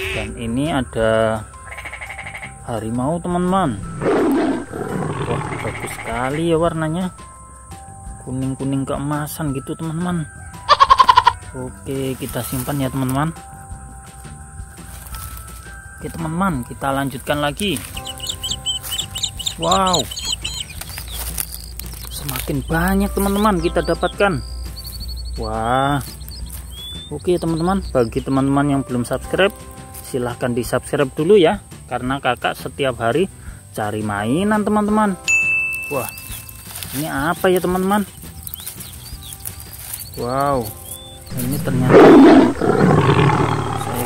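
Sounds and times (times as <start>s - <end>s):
people talking: 0.0s - 1.5s, 2.7s - 3.9s, 4.9s - 7.2s, 8.2s - 10.3s, 11.5s - 13.5s, 16.0s - 18.0s, 19.5s - 20.1s, 22.1s - 24.4s, 25.4s - 26.2s, 27.1s - 36.2s, 36.9s - 38.1s, 40.2s - 44.0s
small birds chirping: 0.0s - 35.0s, 35.8s - 44.0s
lion roaring: 3.8s - 6.4s, 41.3s - 44.0s.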